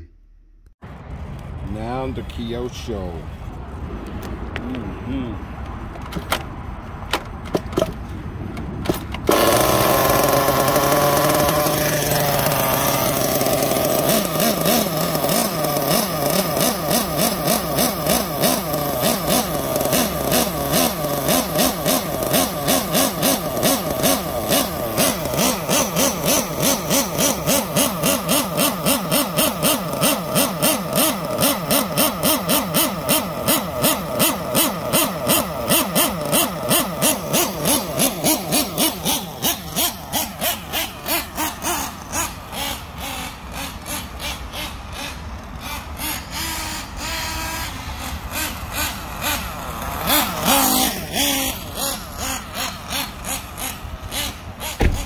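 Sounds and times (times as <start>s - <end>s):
rc buggy engine running: 8.9s - 55.0s.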